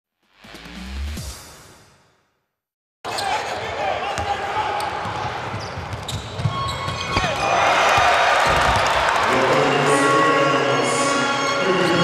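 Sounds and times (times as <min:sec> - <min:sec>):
crowd noise: 0:03.1 - 0:12.0
basketball bouncing on court: 0:04.0 - 0:09.0.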